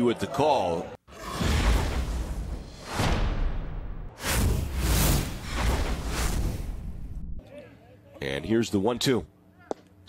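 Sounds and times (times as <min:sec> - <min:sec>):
booming hit with whoosh: 0:01.2 - 0:07.4
pulsing whooshes: 0:01.9 - 0:07.4.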